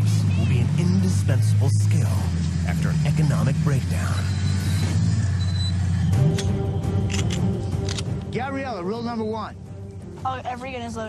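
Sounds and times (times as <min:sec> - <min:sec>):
background music: 0:00.0 - 0:11.0
buggy engine running: 0:00.0 - 0:11.0.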